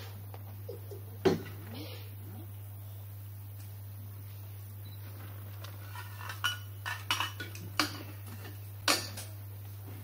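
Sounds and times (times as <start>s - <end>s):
kettle and crockery clinking: 5.9s - 9.4s.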